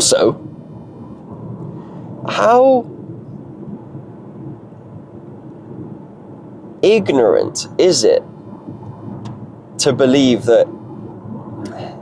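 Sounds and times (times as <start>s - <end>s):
man talking: 0.0s - 0.4s, 2.3s - 2.9s, 6.8s - 8.3s, 9.8s - 10.7s
car cabin road and engine rumble: 6.8s - 12.0s.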